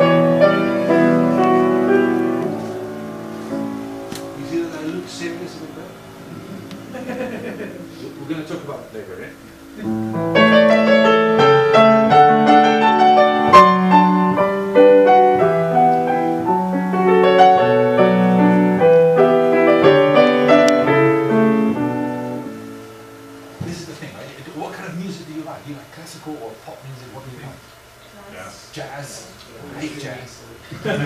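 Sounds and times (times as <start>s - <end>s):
grand piano chords: 0.0s - 25.6s
man talking: 4.4s - 6.0s, 7.9s - 10.0s, 23.6s - 27.6s.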